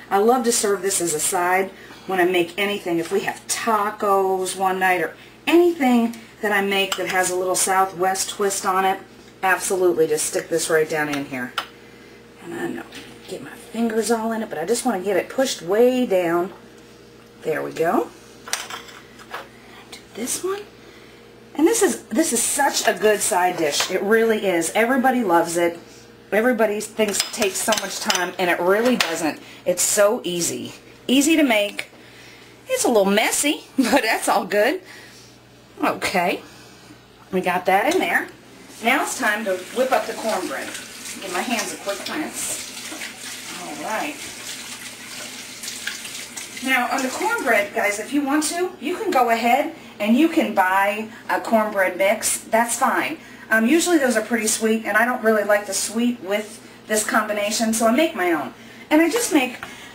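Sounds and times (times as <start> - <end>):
faucet running: 38.8 - 48.0
hands rinsed under water: 38.9 - 47.4.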